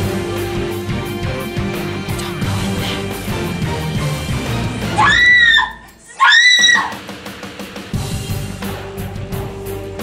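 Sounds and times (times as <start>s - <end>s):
background music: 0.0s - 10.0s
woman screaming: 4.9s - 7.0s.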